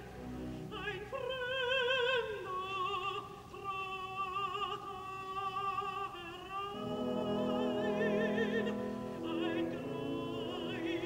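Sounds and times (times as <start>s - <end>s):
opera singer with vibrato: 0.0s - 11.0s
soft orchestra: 0.0s - 11.0s.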